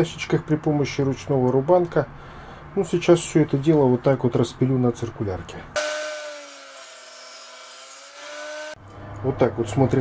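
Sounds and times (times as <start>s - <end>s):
table saw cutting wood: 5.8s - 8.8s.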